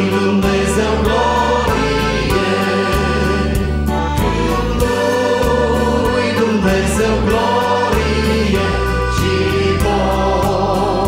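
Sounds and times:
vocal group singing a hymn: 0:00.0 - 0:11.0
electronic keyboard with beat: 0:01.0 - 0:10.6.

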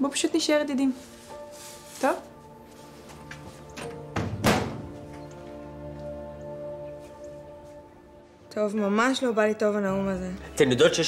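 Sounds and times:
soft background music: 0:00.0 - 0:11.0
door shutting with a thunk: 0:03.8 - 0:05.0.

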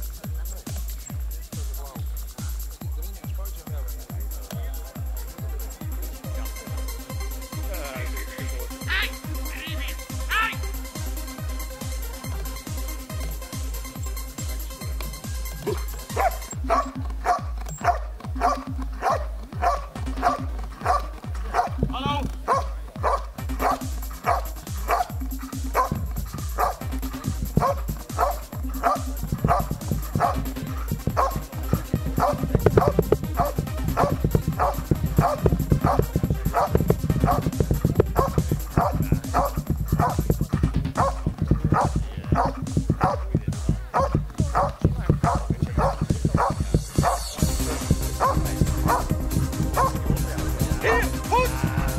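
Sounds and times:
electronic dance music: 0:00.0 - 0:51.9
dog barking: 0:15.6 - 0:51.1.

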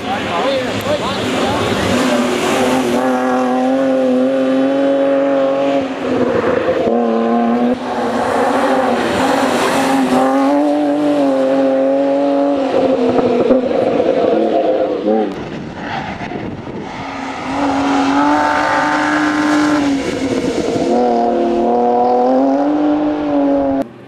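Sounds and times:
car engine at high revs: 0:00.0 - 0:24.0.

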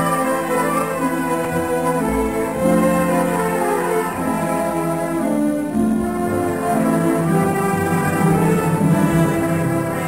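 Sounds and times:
orchestral strings melody: 0:00.0 - 0:10.0.

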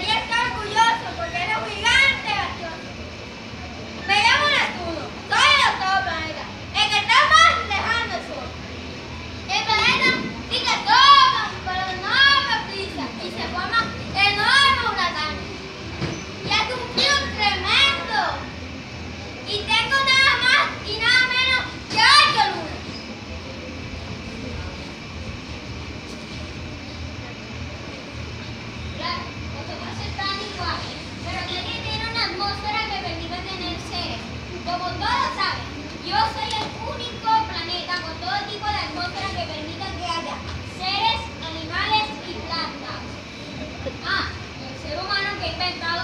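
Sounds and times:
children calling out: 0:00.0 - 0:25.2, 0:28.0 - 0:46.0
murmur of voices: 0:00.0 - 0:46.0
steady low rumble: 0:16.5 - 0:46.0.

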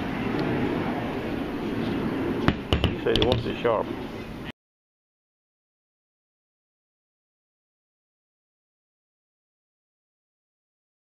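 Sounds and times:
steady background noise: 0:00.0 - 0:04.5
axe head knocking on table: 0:02.5 - 0:03.4.

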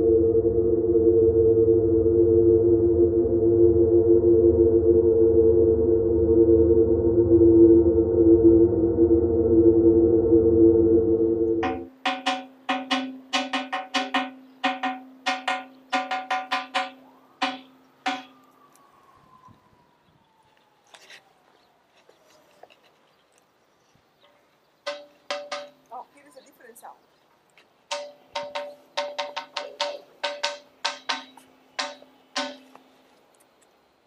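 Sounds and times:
music: 0:11.6 - 0:18.3
stone vessel struck by hand: 0:11.6 - 0:18.4, 0:24.9 - 0:25.8, 0:27.9 - 0:32.8.

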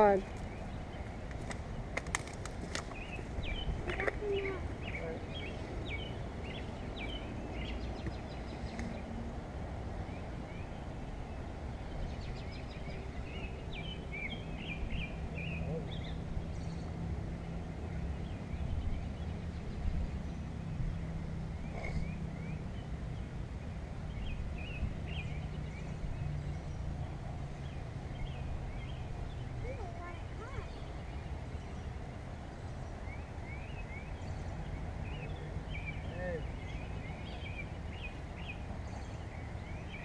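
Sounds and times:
low outdoor rumble: 0:00.0 - 0:40.0
small birds chirping: 0:00.0 - 0:40.0.

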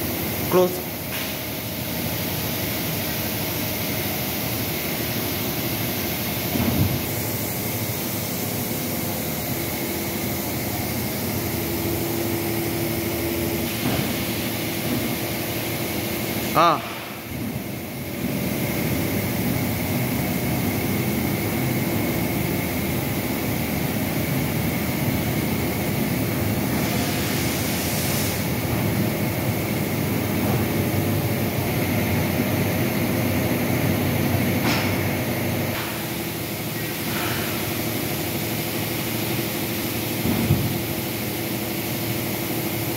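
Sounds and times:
machine motor hum and whine: 0:00.0 - 0:42.9.

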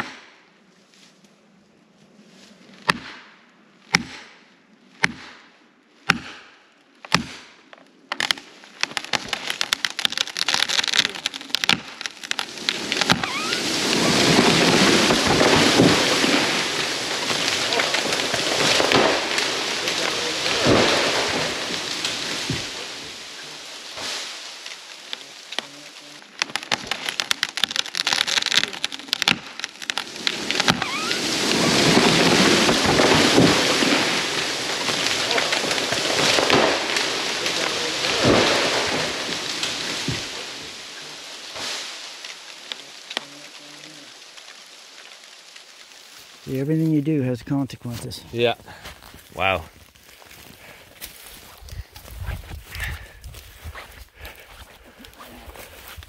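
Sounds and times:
axe striking wedges: 0:02.9 - 0:03.3, 0:03.9 - 0:04.3, 0:05.0 - 0:05.4, 0:06.1 - 0:06.5, 0:07.1 - 0:07.5
wood cracking and popping: 0:07.0 - 0:47.2
tree crashing down: 0:08.1 - 0:47.2.

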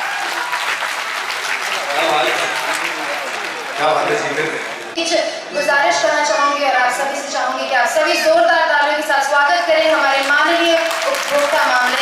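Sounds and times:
audience applauding: 0:00.0 - 0:05.0, 0:08.8 - 0:12.0.

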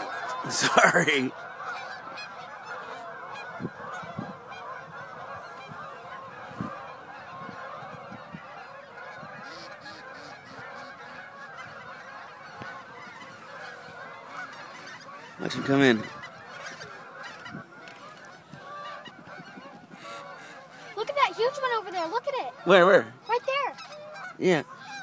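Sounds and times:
geese honking: 0:00.0 - 0:25.0.

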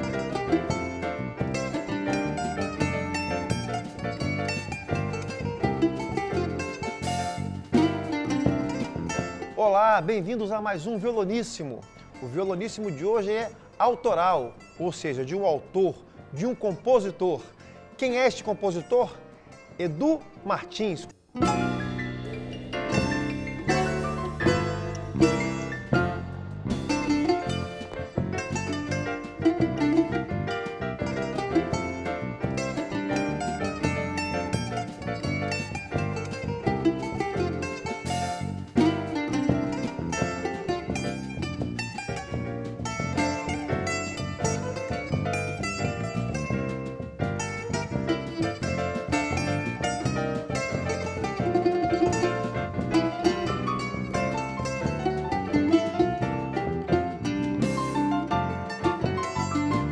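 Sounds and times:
electric bass: 0:00.0 - 0:09.6, 0:21.4 - 0:59.9
drum kit: 0:00.0 - 0:09.7, 0:21.3 - 0:59.9
keyboard: 0:00.0 - 0:59.9
plucked string instrument: 0:00.0 - 0:59.9.

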